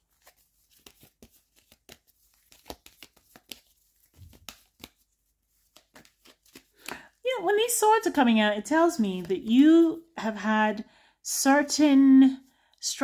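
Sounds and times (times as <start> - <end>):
cards clicking and tapping: 0.1 - 7.0.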